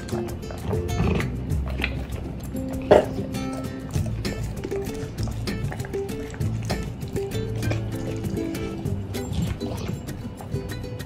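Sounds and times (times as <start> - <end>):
background music: 0.0 - 11.0
dog chewing a treat: 0.0 - 11.0.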